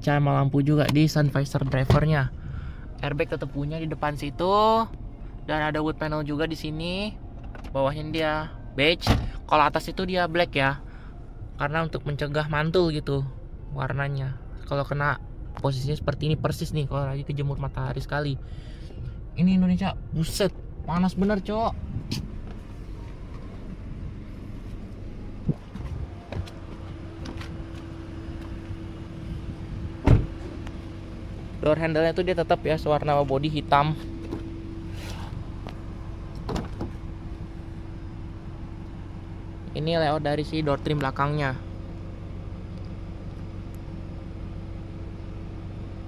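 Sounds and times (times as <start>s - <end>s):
low background hum: 0.0s - 46.0s.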